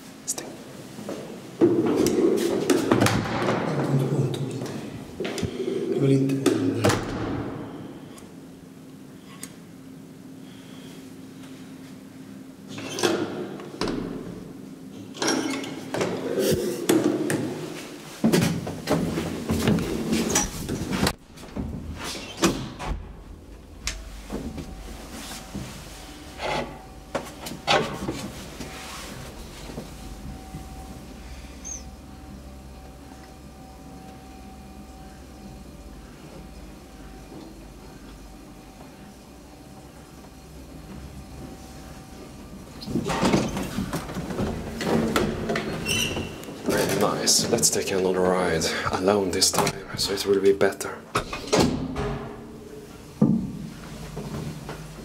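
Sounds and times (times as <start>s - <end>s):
faint steady whine: 0.0s - 55.0s
elevator motor hum: 0.8s - 50.3s
elevator doors clicking and knocking: 42.2s - 47.8s.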